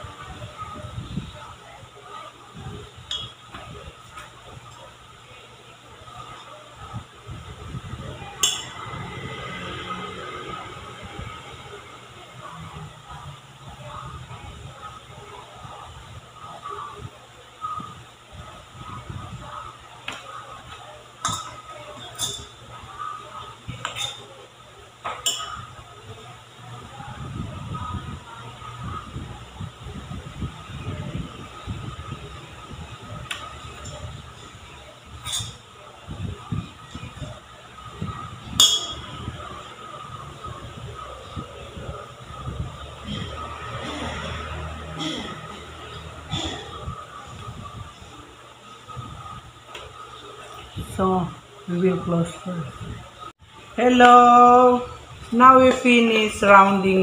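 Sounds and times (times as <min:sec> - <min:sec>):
spoon clinking on metal bowl: 0:38.6 - 0:39.0.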